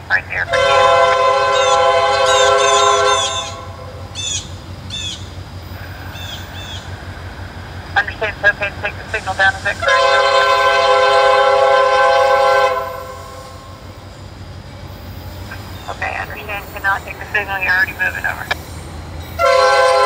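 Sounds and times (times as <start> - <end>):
locomotive air horn blast: 0.5 - 4.0, 8.8 - 13.8, 19.4 - 20.0.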